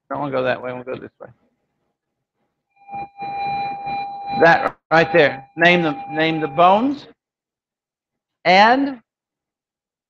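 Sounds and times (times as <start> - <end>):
steady high-pitched tone: 2.8 - 7.1.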